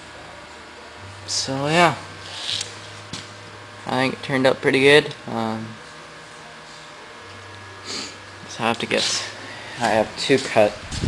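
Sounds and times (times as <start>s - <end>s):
steady low hum: 0.0s - 11.0s
man speaking: 8.5s - 10.8s.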